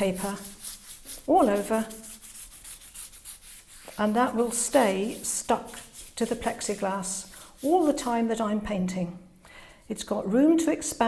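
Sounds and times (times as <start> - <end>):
brush stroking wet paper: 0.0 - 8.4.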